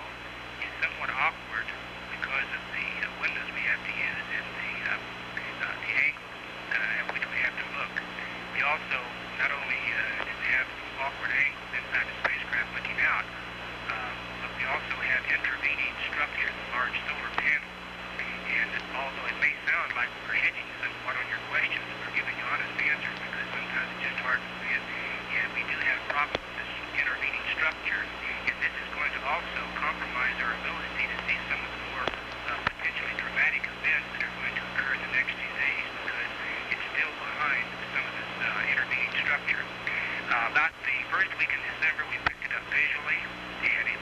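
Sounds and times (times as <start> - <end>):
person speaking over radio: 0.0 - 44.0.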